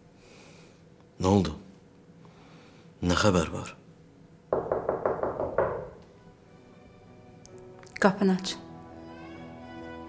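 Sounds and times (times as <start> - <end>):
rapid sharp knocks: 4.5 - 6.0.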